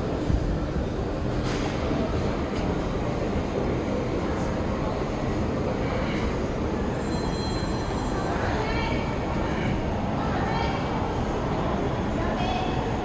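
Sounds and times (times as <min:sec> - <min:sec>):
loud background noise: 0:00.0 - 0:13.0.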